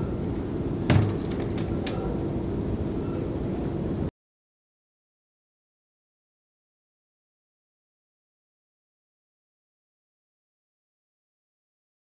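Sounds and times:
clock door thump: 0:00.9 - 0:01.6.

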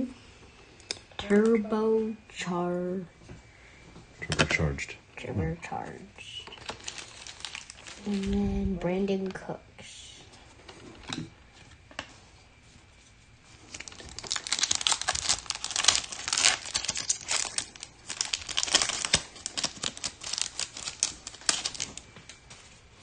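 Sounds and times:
foil wrapper crackling: 0:06.2 - 0:08.5, 0:13.4 - 0:23.0.

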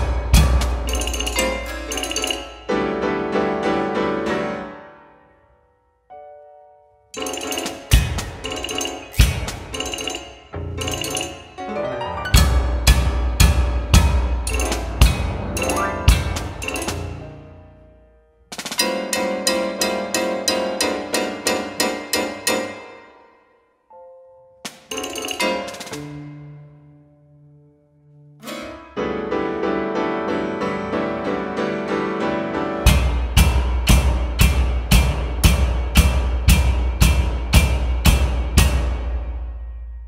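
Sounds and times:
ringing drum strikes: 0:00.0 - 0:02.6, 0:07.2 - 0:11.3, 0:12.4 - 0:17.4
chamber music for pianos and percussion: 0:00.0 - 0:04.8, 0:07.2 - 0:17.8, 0:18.5 - 0:23.1, 0:23.9 - 0:26.7, 0:29.2 - 0:40.0.

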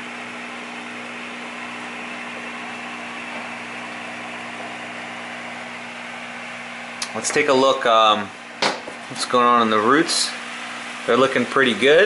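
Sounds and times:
electric hum: 0:00.0 - 0:12.0.

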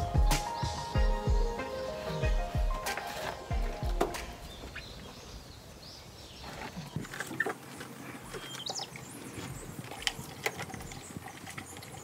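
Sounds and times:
bird chirps: 0:00.0 - 0:07.0, 0:08.3 - 0:09.6.

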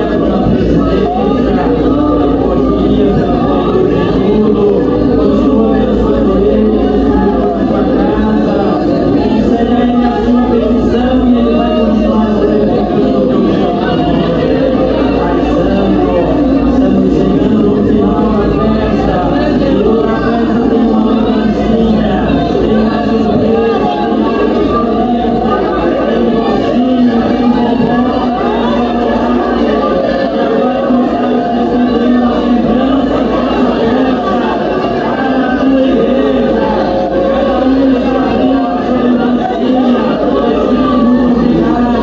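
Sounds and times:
congregation singing a hymn: 0:00.0 - 0:42.0.

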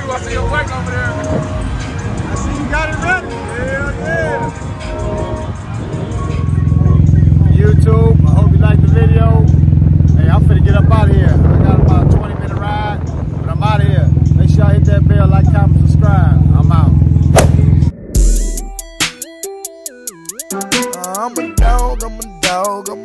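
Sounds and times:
man talking: 0:10.2 - 0:17.0
loud low rumble: 0:14.8 - 0:18.2.

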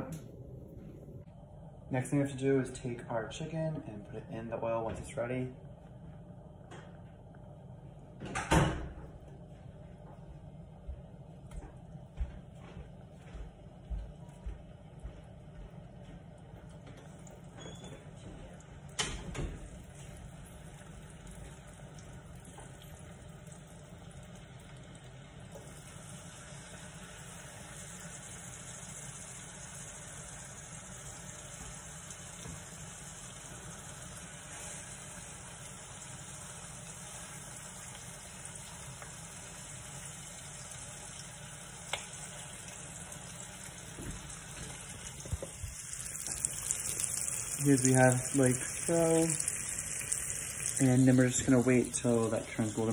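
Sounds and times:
chicken wings sizzling in oil: 0:18.6 - 0:52.9.

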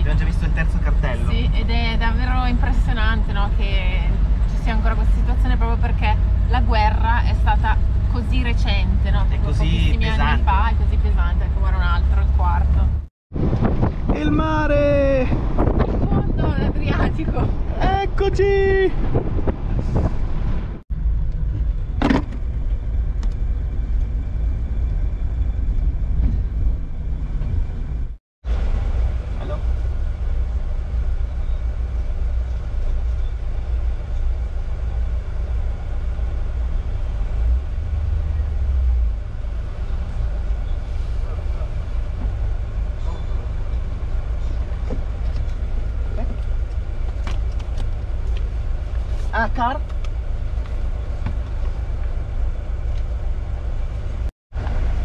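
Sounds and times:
van engine running: 0:00.0 - 0:13.1, 0:13.7 - 0:55.0.

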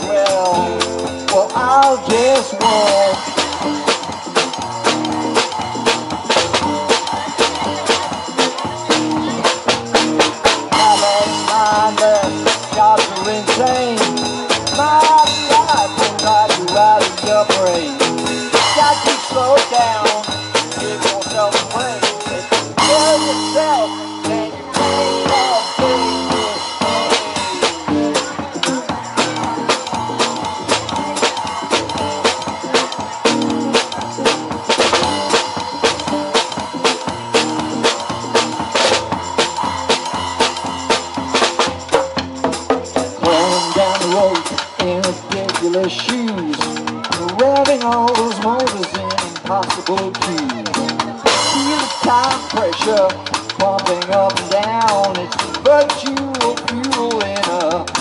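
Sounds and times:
drum kit beating: 0:00.0 - 0:58.0
guitar: 0:00.0 - 0:58.0.

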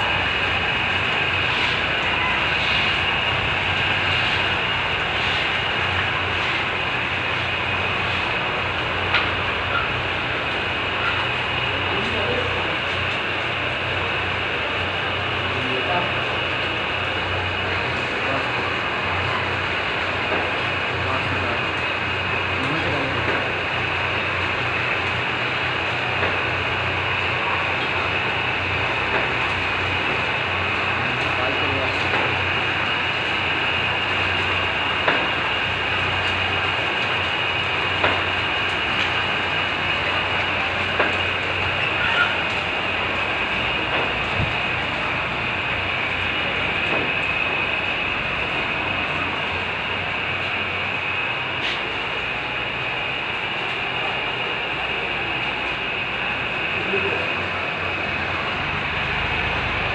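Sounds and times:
conveyor belts rattling: 0:00.0 - 0:59.9.

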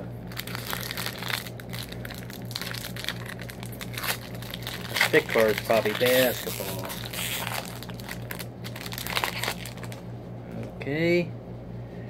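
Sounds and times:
steady low hum: 0:00.0 - 0:12.0
wrapper crinkling: 0:00.3 - 0:10.0.

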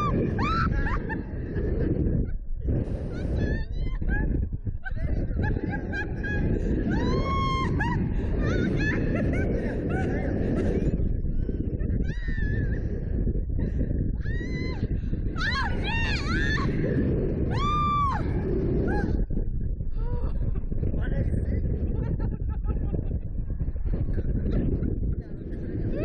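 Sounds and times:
people screaming and laughing: 0:00.0 - 0:26.0
wind on microphone: 0:00.0 - 0:26.0.

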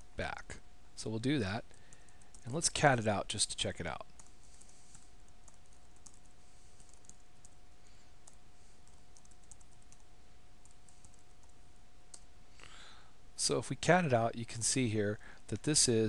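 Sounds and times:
low steady hiss: 0:00.0 - 0:16.0.

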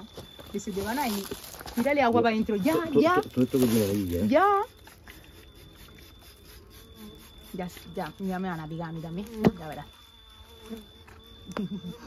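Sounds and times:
honey bees buzzing: 0:00.0 - 0:12.0.

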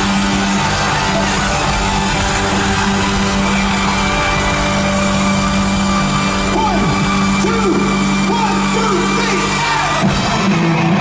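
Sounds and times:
live rock band droning chord: 0:00.0 - 0:11.0.

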